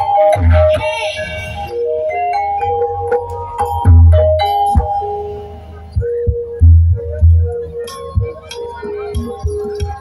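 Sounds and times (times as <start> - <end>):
metallophone notes: 0.0 - 10.0
heavy low drum beat: 6.0 - 7.6.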